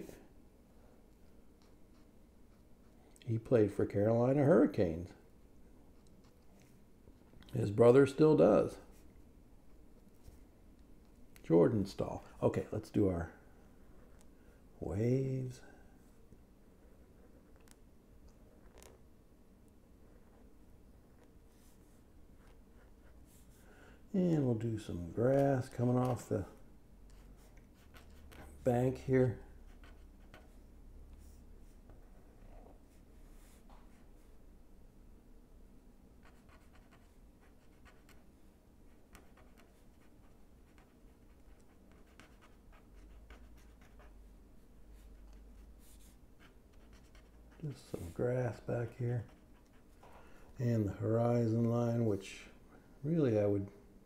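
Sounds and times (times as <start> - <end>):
marker scratching on paper: 29.6 - 30.6, 36.2 - 38.3, 38.9 - 44.2, 44.9 - 50.1.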